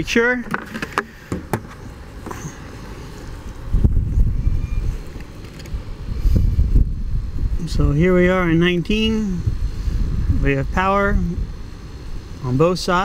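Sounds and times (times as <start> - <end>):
wind buffeting microphone: 3.3 - 12.3.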